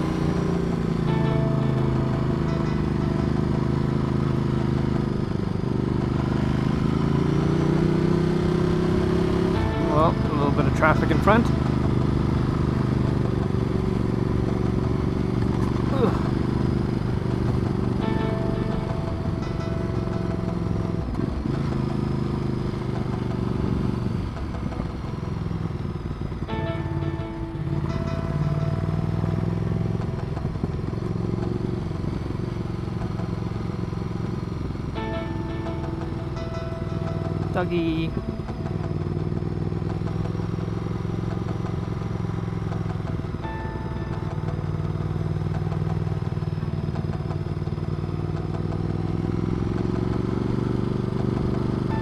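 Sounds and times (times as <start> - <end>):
motorcycle engine under load: 0.0 - 52.0
wind and road noise: 0.0 - 52.0.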